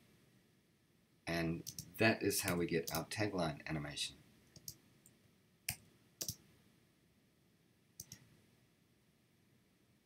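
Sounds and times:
computer mouse clicks: 0:01.6 - 0:01.9, 0:04.5 - 0:06.4, 0:08.0 - 0:08.3.

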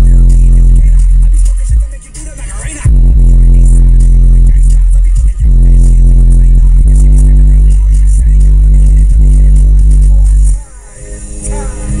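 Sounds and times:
loud bass music in car: 0:00.0 - 0:12.0.

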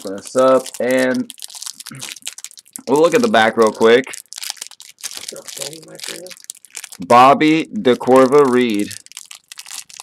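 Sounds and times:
plastic wrapper crinkling: 0:00.0 - 0:10.0.

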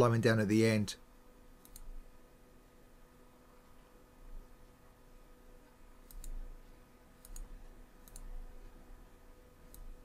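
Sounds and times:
computer mouse clicking: 0:01.6 - 0:02.0, 0:06.0 - 0:08.7, 0:09.6 - 0:10.0.

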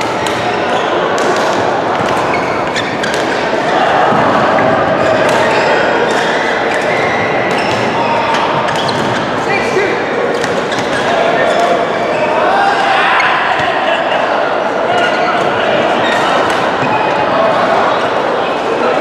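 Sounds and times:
racket striking shuttlecock: 0:00.0 - 0:00.6, 0:01.2 - 0:03.5, 0:05.2 - 0:05.5
babble of many voices: 0:00.0 - 0:19.0
sneakers squeaking on court: 0:02.0 - 0:03.5, 0:04.1 - 0:09.4, 0:10.3 - 0:12.4.

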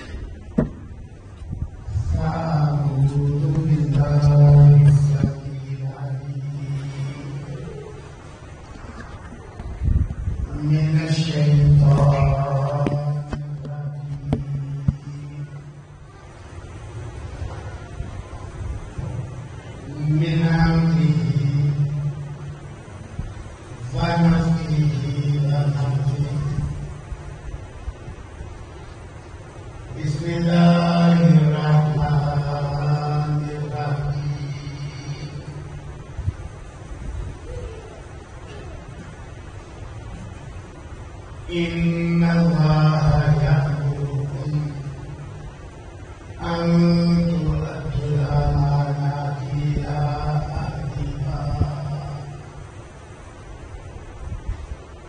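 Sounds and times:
man chanting a held note: 0:01.9 - 0:08.2, 0:10.4 - 0:16.2, 0:19.0 - 0:27.0, 0:29.9 - 0:36.0, 0:41.4 - 0:45.3, 0:46.2 - 0:52.7.

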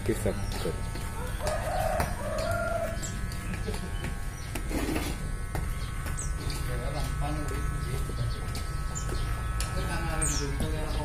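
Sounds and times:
hair clippers buzzing: 0:00.0 - 0:11.0.

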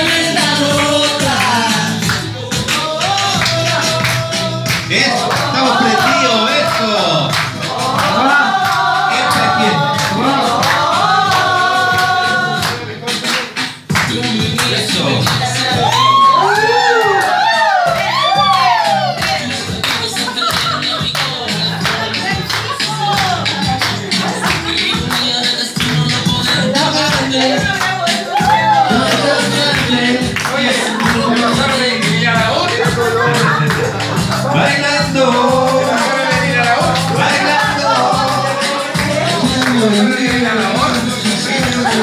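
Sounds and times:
dance music with singer: 0:00.0 - 0:42.0.

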